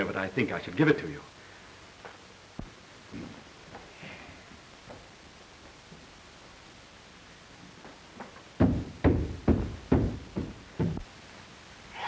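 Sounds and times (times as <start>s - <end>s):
dull heavy thumps: 8.2s - 11.1s.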